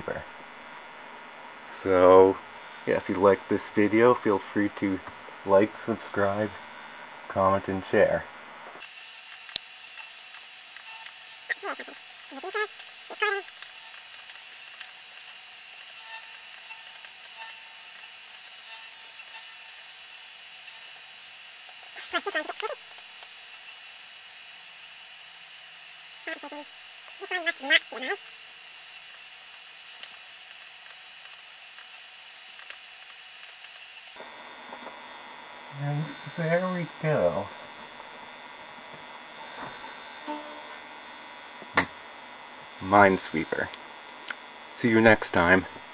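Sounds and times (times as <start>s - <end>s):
steady hiss: 24.6s - 37.6s.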